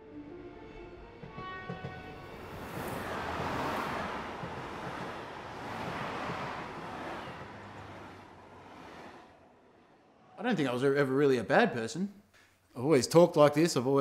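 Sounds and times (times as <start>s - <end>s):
train going by: 1.2s - 11.2s
van driving past: 2.0s - 10.4s.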